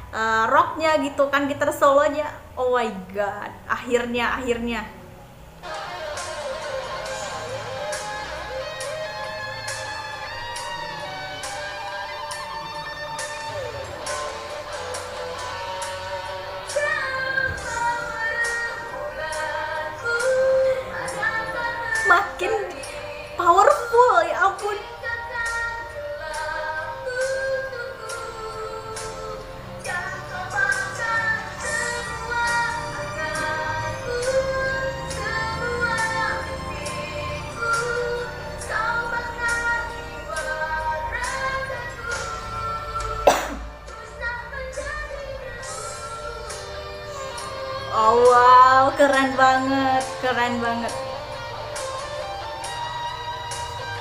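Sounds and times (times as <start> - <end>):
woman singing: 14.9 - 52.7.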